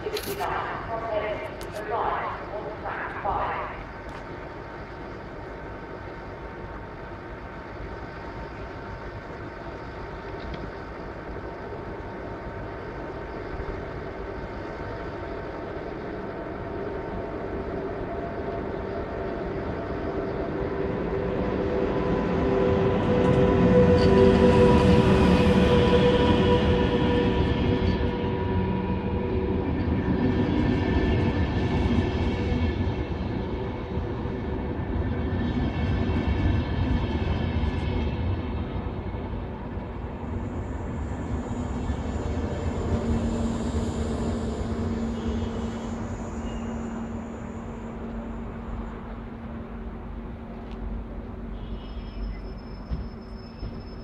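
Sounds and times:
train coaches rolling by: 0.0 - 54.0
train rumbling and whining: 0.0 - 54.0.

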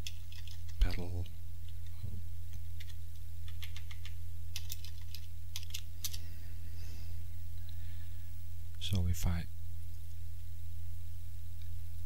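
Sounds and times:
computer keyboard typing: 0.0 - 0.8, 2.7 - 6.2
low electrical hum: 0.0 - 12.0.

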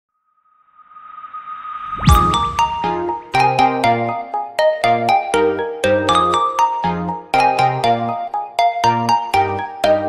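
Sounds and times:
whoosh: 0.6 - 3.4
steady high tone: 0.6 - 3.9.

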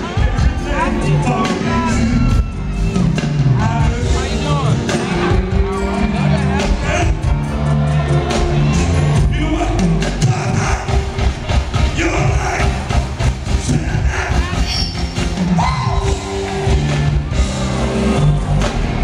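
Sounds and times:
bass guitar: 0.0 - 19.0
drums: 0.0 - 19.0.

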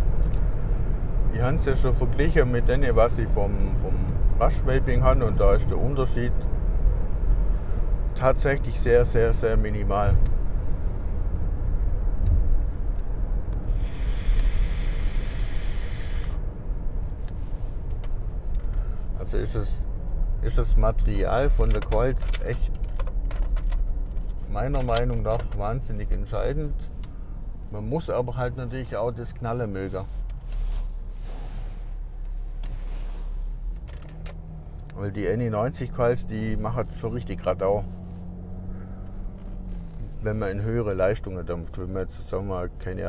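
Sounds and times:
car cabin road and engine rumble: 0.0 - 43.0
soft hiss: 12.4 - 19.3, 26.3 - 33.9
e-cigarette hiss: 13.7 - 16.4.

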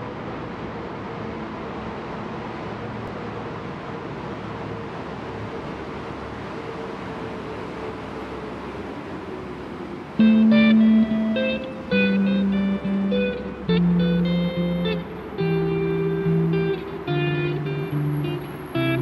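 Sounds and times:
traffic rumble in tunnel: 0.0 - 19.0
faint steady hum: 10.1 - 19.0.

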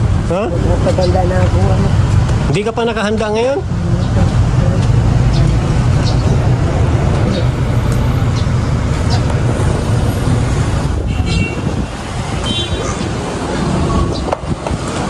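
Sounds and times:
vehicle engine rumble: 0.0 - 15.0.

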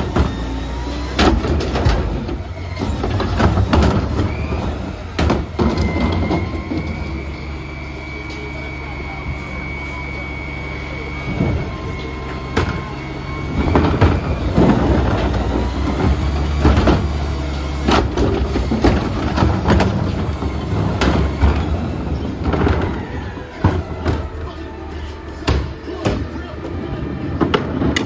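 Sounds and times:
garbage truck engine running: 0.0 - 28.0
trash cart clanking and rattling: 0.0 - 28.0
falling trash: 11.2 - 26.4.

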